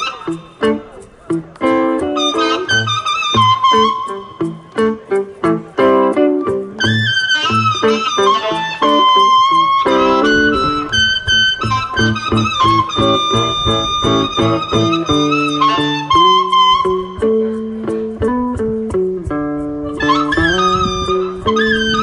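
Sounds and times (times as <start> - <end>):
amplified harmonica: 0.0 - 22.0
electric guitar picked notes: 0.0 - 22.0.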